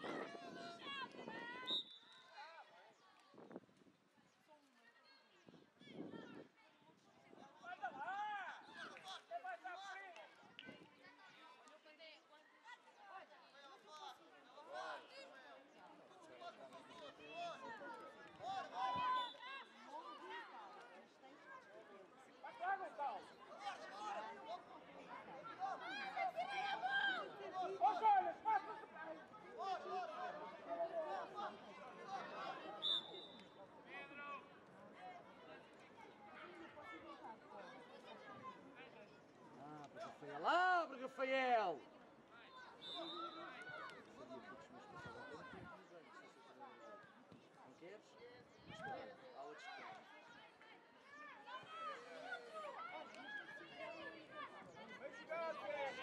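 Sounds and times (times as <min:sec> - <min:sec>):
voices calling and shouting: 0:00.0 - 0:03.7, 0:05.2 - 0:56.0
referee's whistle blast: 0:32.8 - 0:33.5, 0:42.8 - 0:43.6.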